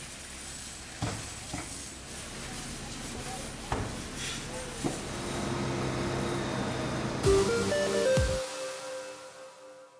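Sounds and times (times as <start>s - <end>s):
water hissing from fire hose: 0.0s - 6.2s
electronic music jingle: 7.2s - 9.9s.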